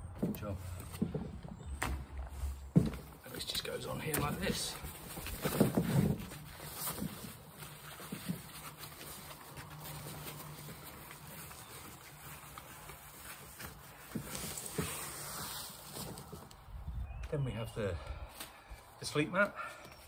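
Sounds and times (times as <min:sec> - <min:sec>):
foil mat crinkling and rustling: 0:02.3 - 0:16.6.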